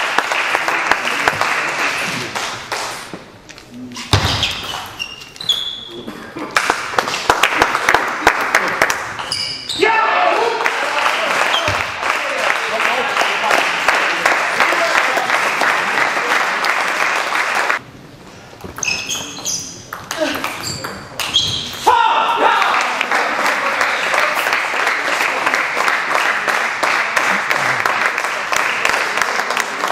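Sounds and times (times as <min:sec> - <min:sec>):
spectators clapping: 0:00.0 - 0:03.1, 0:06.5 - 0:09.2, 0:10.2 - 0:17.8, 0:22.4 - 0:29.9
spectators shouting: 0:21.8 - 0:22.9.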